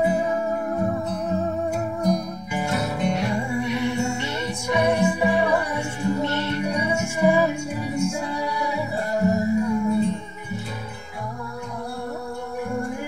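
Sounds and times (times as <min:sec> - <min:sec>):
acoustic guitar music: 0:00.0 - 0:13.0.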